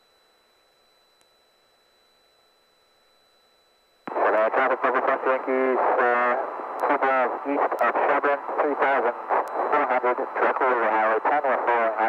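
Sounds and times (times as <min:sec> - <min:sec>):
pilot speaking over radio: 0:04.1 - 0:12.0.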